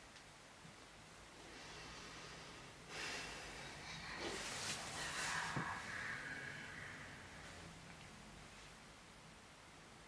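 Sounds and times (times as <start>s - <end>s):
person breathing noisily: 1.4s - 7.8s.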